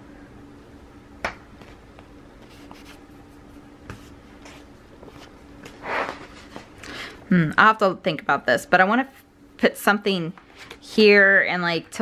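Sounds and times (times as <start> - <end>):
paper rustling and rubbing: 2.4 - 6.7.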